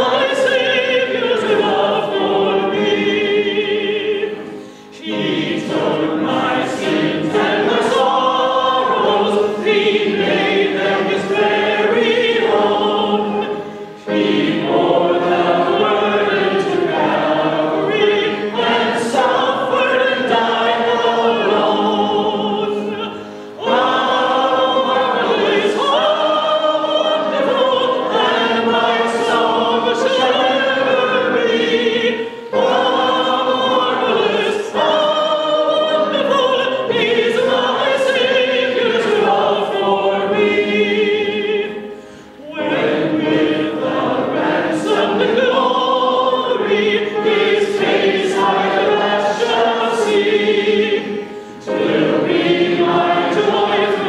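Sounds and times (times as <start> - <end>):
congregation singing a hymn: 0.0 - 54.0.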